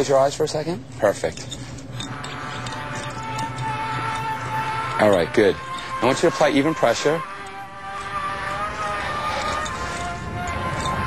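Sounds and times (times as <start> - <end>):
slow suspense music: 0.8 - 11.0.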